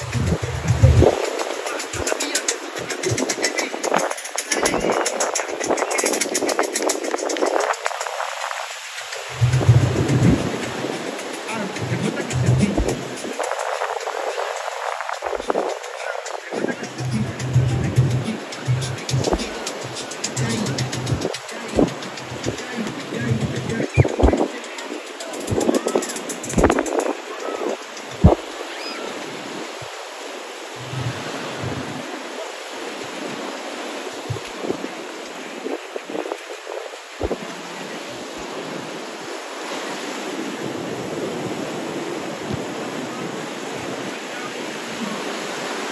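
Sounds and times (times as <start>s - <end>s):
people's voices: 0.0s - 29.6s, 40.4s - 45.6s
small waves breaking on beach: 0.0s - 45.9s.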